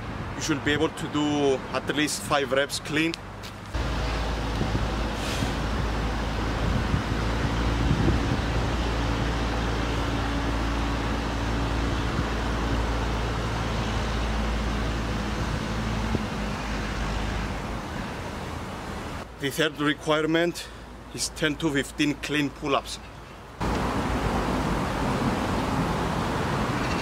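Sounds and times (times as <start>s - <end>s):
road traffic rumble: 0.0s - 27.0s.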